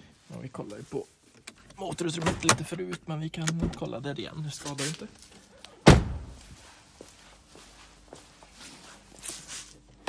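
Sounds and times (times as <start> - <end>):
soft rustles: 4.5 - 10.0
footsteps on concrete floor: 4.6 - 10.0.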